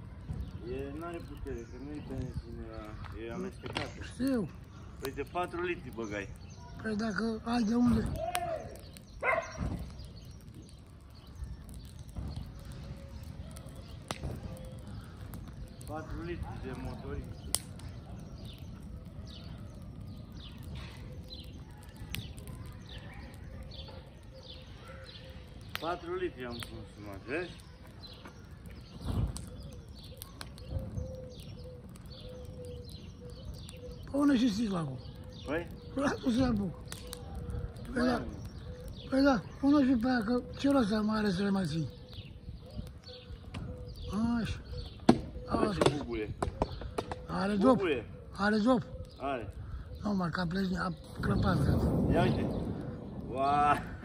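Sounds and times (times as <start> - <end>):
dry grass burning: 0.0 - 54.0
fire crackles: 0.0 - 54.0
small birds chirping: 0.0 - 54.0
dove cooing: 42.6 - 49.9.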